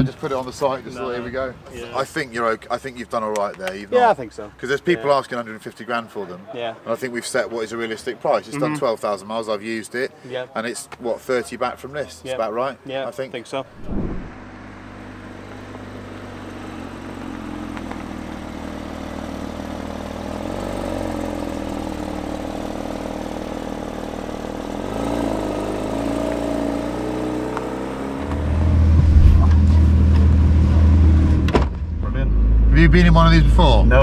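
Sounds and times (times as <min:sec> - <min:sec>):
car engine idling: 0:13.7 - 0:34.0.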